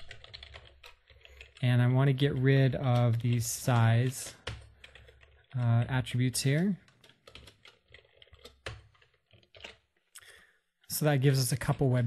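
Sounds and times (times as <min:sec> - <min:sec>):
computer keyboard clicks: 0:00.0 - 0:01.6, 0:02.2 - 0:05.6, 0:06.5 - 0:09.9.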